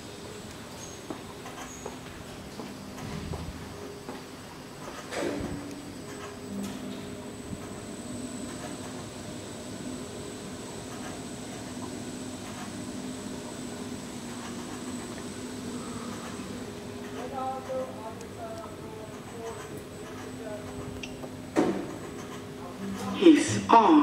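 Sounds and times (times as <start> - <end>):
steady mechanical hum: 0.0 - 24.0.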